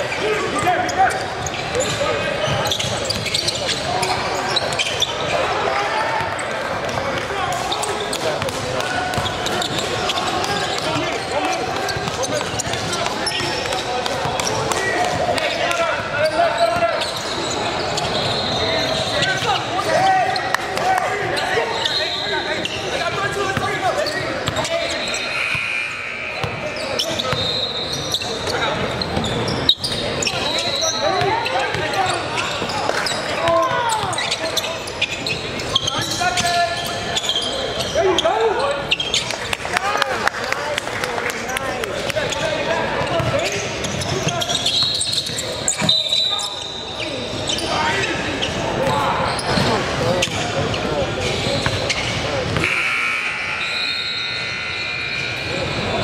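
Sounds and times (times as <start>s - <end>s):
sneakers squeaking: 0.0s - 39.6s, 41.8s - 56.0s
chatter and shouts: 0.0s - 56.0s.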